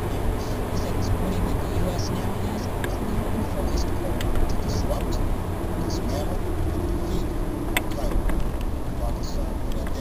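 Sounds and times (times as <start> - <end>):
faint voice talking: 0.0 - 5.2
car tyres and engine rumble: 0.0 - 10.0.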